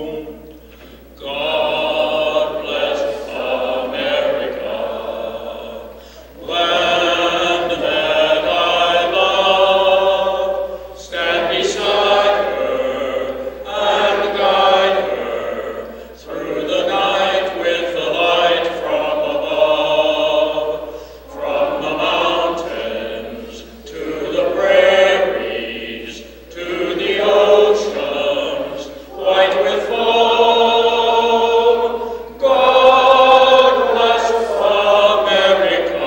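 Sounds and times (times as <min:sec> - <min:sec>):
other voices singing: 0:00.0 - 0:36.0.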